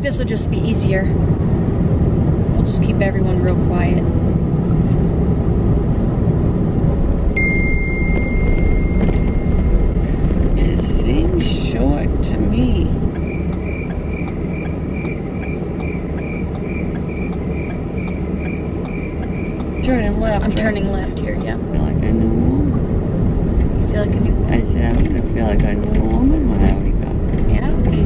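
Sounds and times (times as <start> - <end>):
car cabin road and engine noise: 0.0 - 28.0
turn signal ticking: 7.2 - 28.0.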